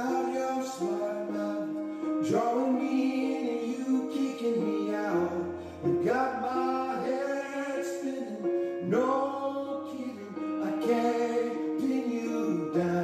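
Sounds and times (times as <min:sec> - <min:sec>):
instrumental backing music: 0:00.0 - 0:13.0.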